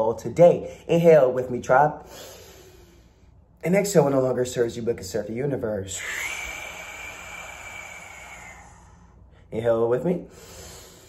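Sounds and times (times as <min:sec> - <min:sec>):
man exhaling through pursed lips: 0:02.0 - 0:03.6, 0:05.9 - 0:09.5, 0:10.2 - 0:11.0.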